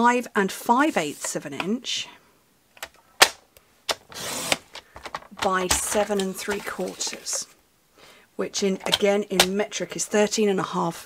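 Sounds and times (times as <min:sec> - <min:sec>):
card scraping across trimmer: 0:04.1 - 0:04.7.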